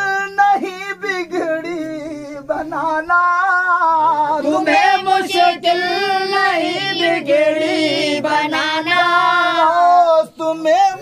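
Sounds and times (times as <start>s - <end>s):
person singing unaccompanied: 0.0s - 11.0s.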